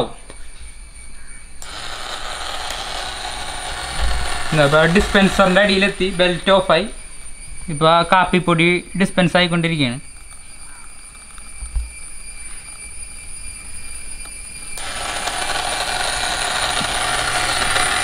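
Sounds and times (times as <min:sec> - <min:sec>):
small electric motor running: 0:01.6 - 0:06.7, 0:14.8 - 0:18.0
low hum: 0:01.6 - 0:07.6.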